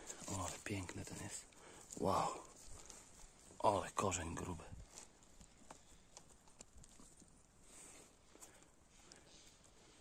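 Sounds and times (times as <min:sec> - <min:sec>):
hand rustling in moss: 0:00.0 - 0:10.0
faint scattered clicks: 0:04.9 - 0:07.4.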